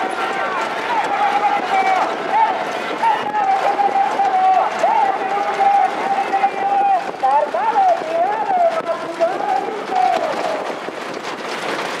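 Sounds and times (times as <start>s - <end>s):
noisy outdoor background: 0.0s - 12.0s.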